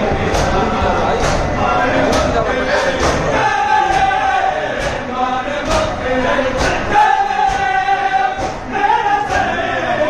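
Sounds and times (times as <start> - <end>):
sharp beat: 0.0 - 9.6
crowd of men chanting: 0.0 - 10.0.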